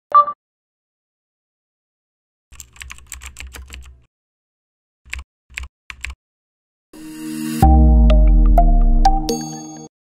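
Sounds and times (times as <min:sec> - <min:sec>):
computer keyboard typing: 0:02.6 - 0:04.0, 0:05.1 - 0:06.2.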